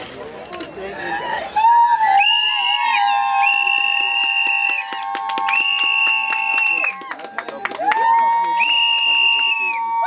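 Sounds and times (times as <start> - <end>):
lower whistling tone: 2.2 - 7.0, 8.6 - 10.0.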